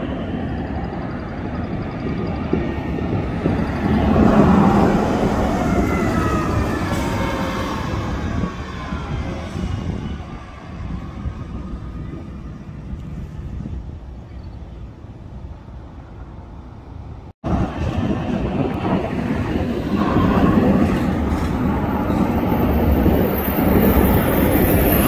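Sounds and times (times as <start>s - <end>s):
bus engine and drivetrain whine: 0.0s - 25.0s
general traffic noise: 0.0s - 25.0s.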